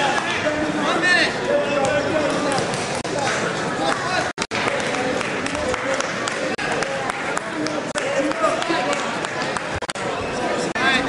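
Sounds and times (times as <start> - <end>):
hall hubbub: 0.0 - 11.0.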